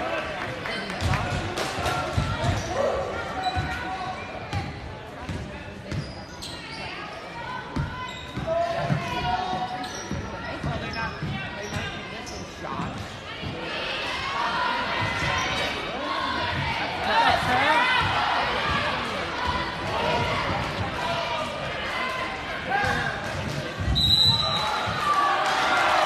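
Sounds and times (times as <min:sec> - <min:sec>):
people chattering and shouting: 0:00.0 - 0:26.0.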